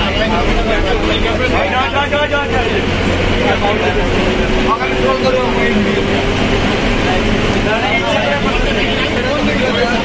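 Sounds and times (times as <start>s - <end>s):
bus engine and road rumble: 0.0s - 10.0s
people talking: 0.0s - 10.0s.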